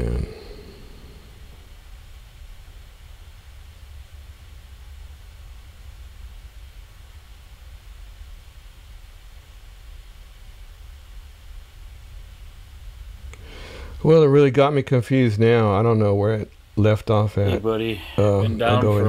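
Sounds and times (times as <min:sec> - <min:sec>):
low rumble with faint hiss: 0:00.0 - 0:19.0.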